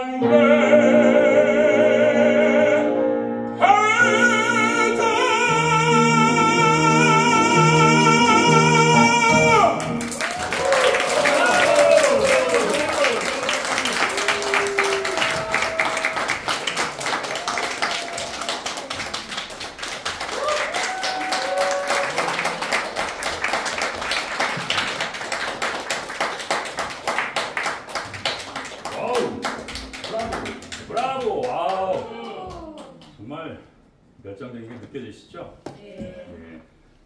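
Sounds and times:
audience applauding: 9.0 - 33.2.

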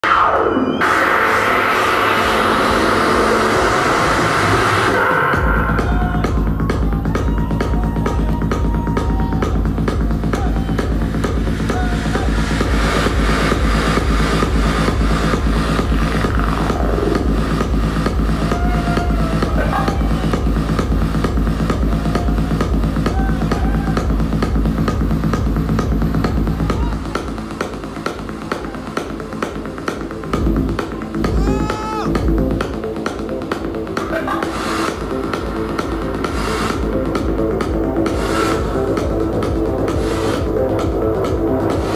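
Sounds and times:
techno music over sound system: 0.0 - 41.9.

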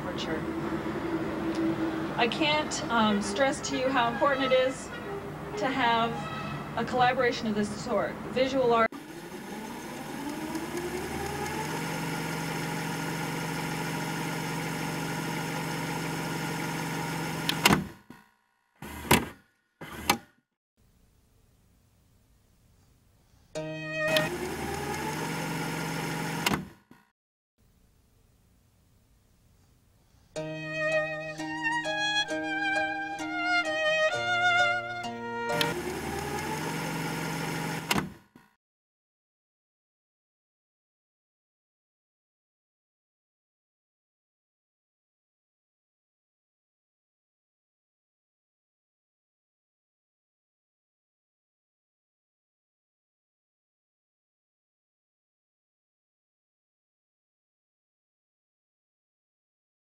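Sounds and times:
violin music: 0.1 - 7.0, 23.6 - 25.8, 30.4 - 37.8
tape transport motor whirring: 0.2 - 7.0, 8.8 - 18.2, 18.8 - 20.4, 24.0 - 27.0, 35.0 - 38.5
short mechanical clunks: 17.4 - 18.0, 18.8 - 20.3, 26.4 - 27.0, 37.8 - 38.5.

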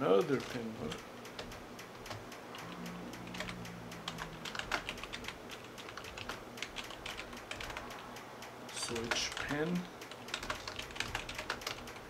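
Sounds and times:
keyboard keystroke clicks: 0.4 - 8.0.

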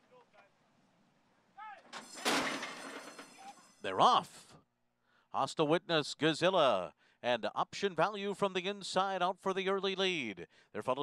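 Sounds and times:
horses clattering: 1.8 - 3.9
metal gate doors banging open: 1.9 - 3.9.

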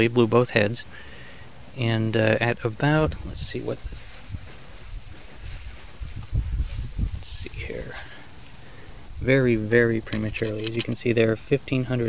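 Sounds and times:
faint hiss: 0.3 - 10.1
wind rumble: 2.6 - 10.9
microphone handling noise: 3.0 - 9.4.

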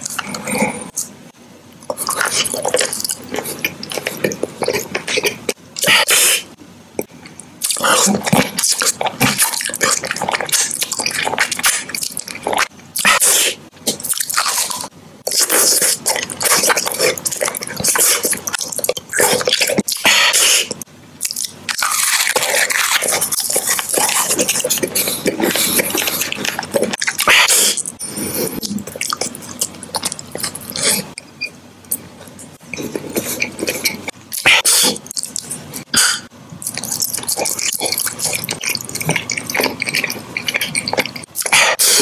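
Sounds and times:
chewing chocolate mouth sounds: 7.0 - 42.0
crunchy bite: 7.6 - 27.9.

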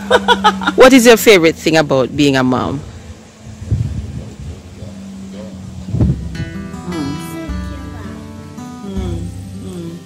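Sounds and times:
wind on microphone: 2.2 - 7.1.

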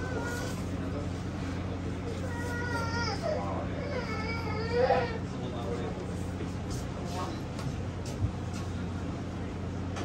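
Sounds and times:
small child crying: 0.0 - 0.6, 2.1 - 5.3
boat engine humming: 0.0 - 9.9.

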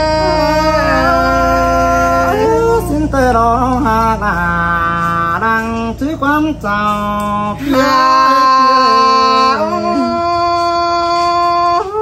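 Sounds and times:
person singing folk song: 0.0 - 12.0
steady low backing: 0.0 - 12.0.

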